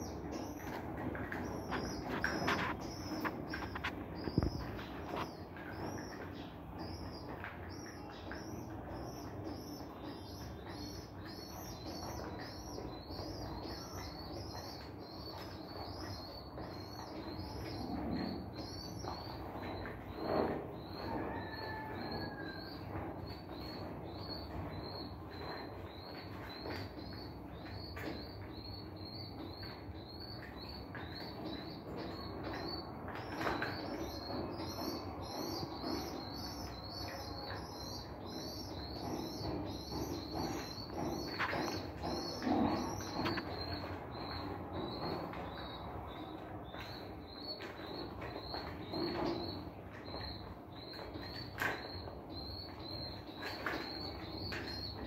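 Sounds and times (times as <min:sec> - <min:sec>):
pigeon chicks peeping: 0:00.0 - 0:55.0.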